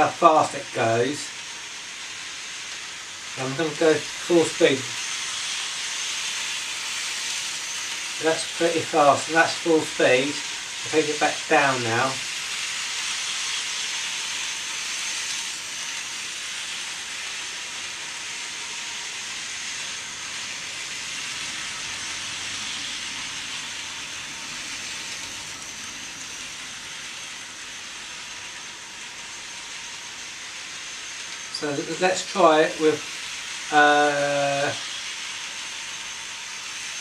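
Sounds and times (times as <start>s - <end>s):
model train motor whirring: 0.0s - 37.0s.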